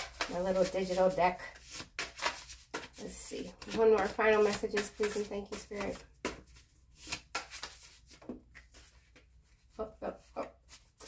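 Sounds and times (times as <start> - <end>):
cards flicking and tapping: 0.0 - 1.0, 1.6 - 9.2.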